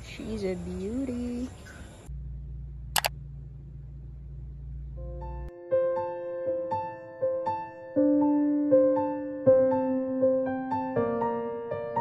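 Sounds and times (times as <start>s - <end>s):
low steady hum: 0.0s - 5.5s.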